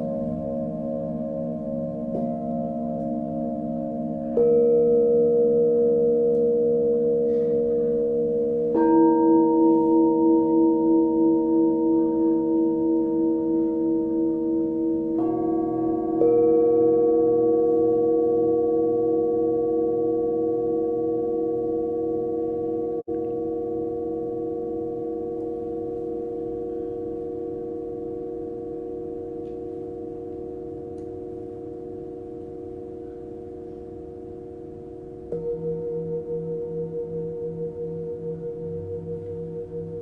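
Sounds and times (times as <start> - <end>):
singing bowls ringing: 0.0 - 40.0.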